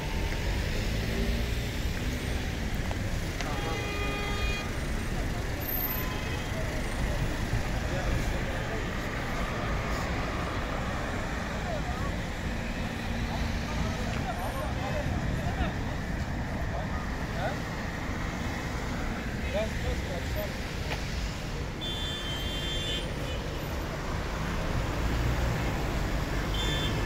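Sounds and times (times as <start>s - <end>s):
cars passing: 0.0s - 27.0s
faint crowd voices: 0.0s - 27.0s
vehicle engines running: 0.0s - 27.0s.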